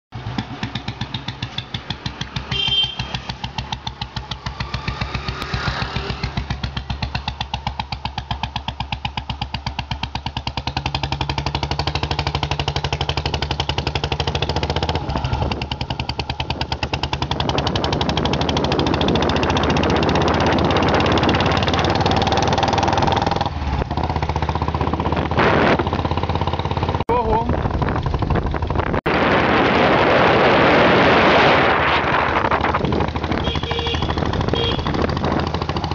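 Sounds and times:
motorcycle engine thumping: 0.1 - 29.1, 32.5 - 35.9.

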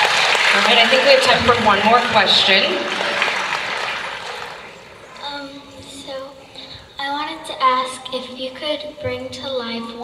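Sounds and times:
audience applause: 0.0 - 5.1.

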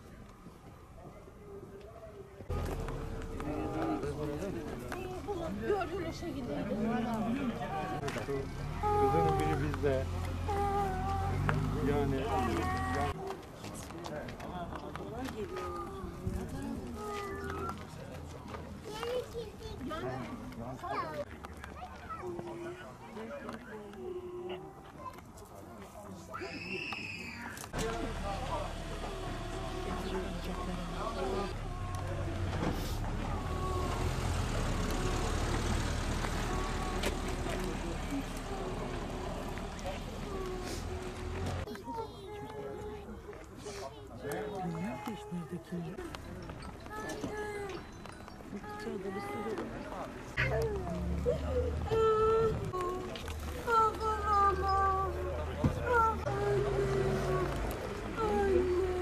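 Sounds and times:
faint voices talking: 0.0 - 59.0
vehicle engine running: 2.5 - 5.8, 27.8 - 41.7.

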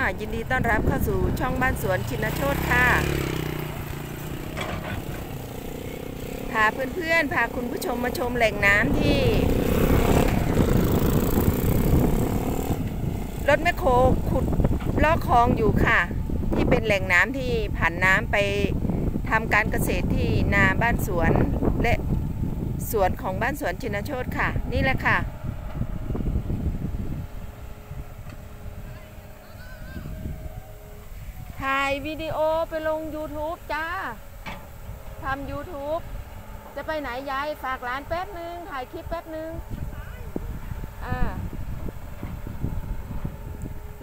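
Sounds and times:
faint engine hum: 0.0 - 44.0
wind buffeting microphone: 0.0 - 44.0.

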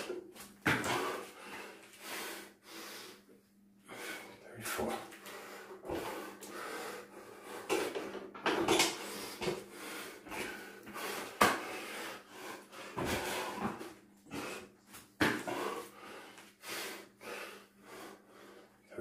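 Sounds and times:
man breathing hard: 0.7 - 8.2, 8.8 - 14.8, 15.4 - 18.9
thumps on exercise mat: 15.2 - 15.6.

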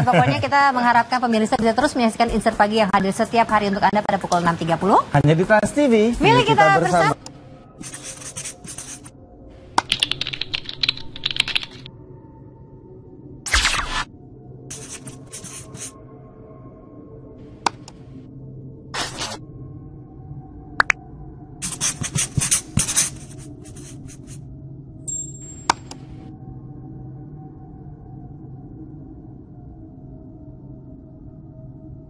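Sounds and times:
faint background music: 0.0 - 12.9, 13.5 - 28.7.

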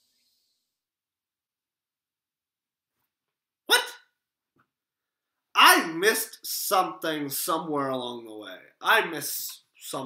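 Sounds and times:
man exclaiming in surprise: 3.7 - 4.0.

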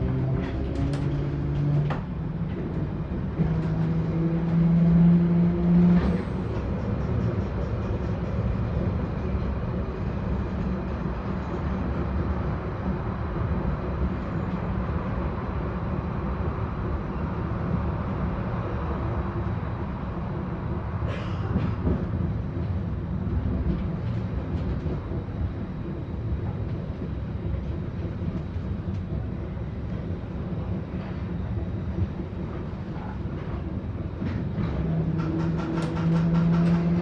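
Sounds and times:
wheels rumbling on track: 0.0 - 37.0.

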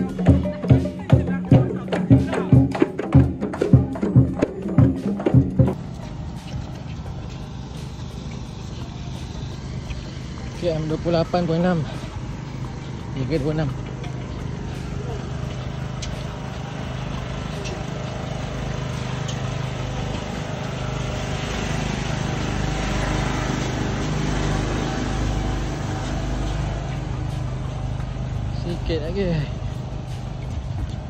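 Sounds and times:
jogging movement noise: 0.0 - 31.0
blower fan motor hum: 5.8 - 31.0.

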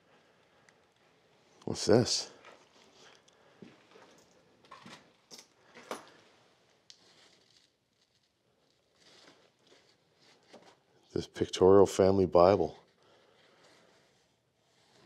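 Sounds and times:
old paper pages rustling: 5.7 - 11.1.

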